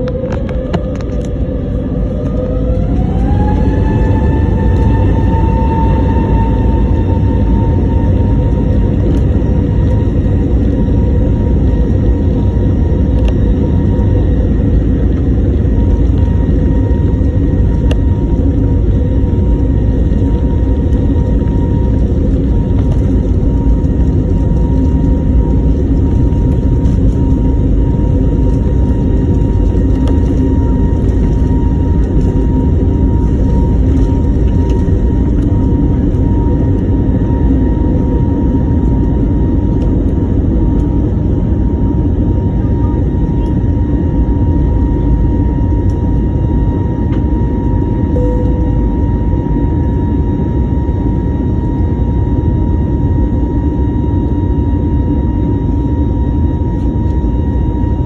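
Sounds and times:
jet engines rumbling: 0:00.0 - 0:58.0
thin steady whine: 0:00.0 - 0:58.0.

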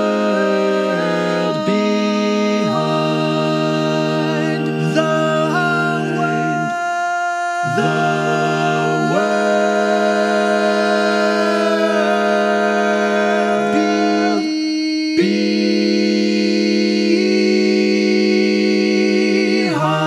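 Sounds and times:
a cappella male harmony: 0:00.0 - 0:20.0.

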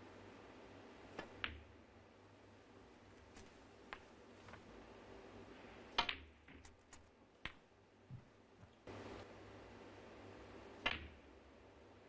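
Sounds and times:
snooker balls clicking: 0:01.1 - 0:01.8, 0:05.9 - 0:08.8.

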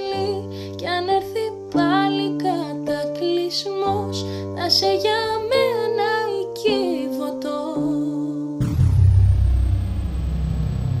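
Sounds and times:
deep steady rumble: 0:08.6 - 0:11.0.

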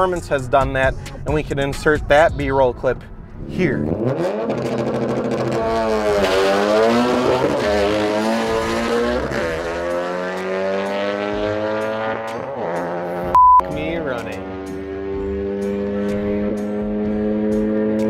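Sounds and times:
car engine accelerating with upshifts: 0:03.0 - 0:18.0
short loud beep: 0:13.3 - 0:13.7.

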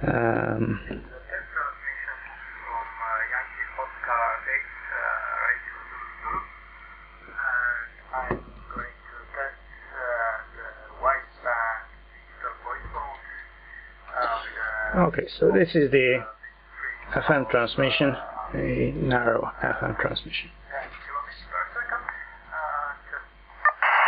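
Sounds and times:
man's voice over radio: 0:00.0 - 0:23.8.

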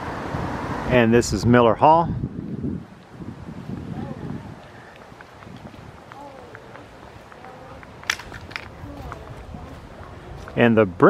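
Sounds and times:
footsteps on pavement: 0:02.4 - 0:11.0
faint voices: 0:03.7 - 0:11.0
sharp clicks: 0:08.0 - 0:08.8.

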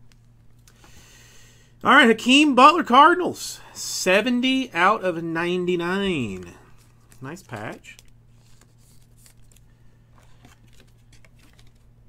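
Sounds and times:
low steady hum: 0:00.0 - 0:12.0
card rustling and clicking: 0:06.1 - 0:12.0.

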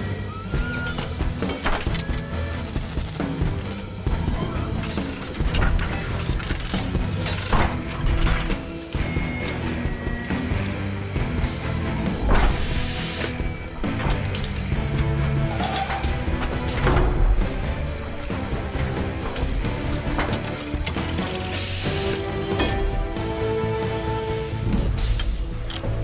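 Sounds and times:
whirring servos: 0:00.0 - 0:16.7
metal clanks: 0:13.8 - 0:17.8.

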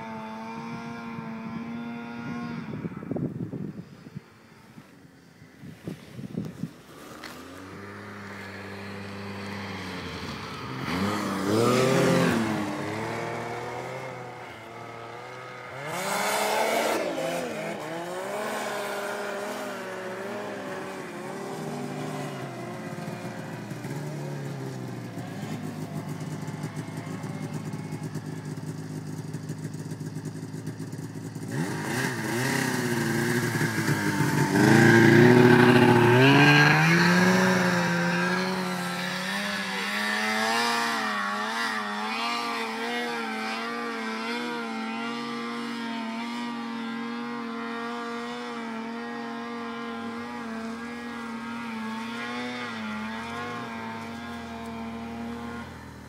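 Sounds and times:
nearby snowmobile revving: 0:00.0 - 0:04.1, 0:05.2 - 0:56.0
distant snowmobile engine: 0:00.0 - 0:56.0.

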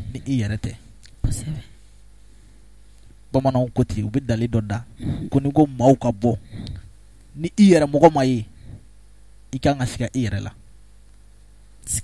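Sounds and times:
breathy voice into microphone: 0:01.2 - 0:01.8, 0:04.8 - 0:05.6, 0:06.2 - 0:07.0.

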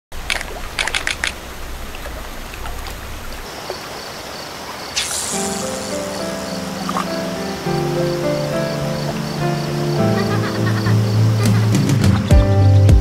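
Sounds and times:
sharp clicks: 0:00.2 - 0:01.4
water trickling: 0:00.2 - 0:11.6
high chirping: 0:04.8 - 0:12.9
whoosh: 0:05.0 - 0:07.1
music with low chords: 0:05.9 - 0:13.0.

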